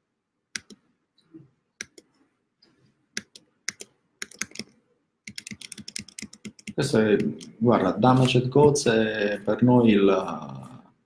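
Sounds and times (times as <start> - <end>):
computer keyboard typing: 3.2 - 7.5.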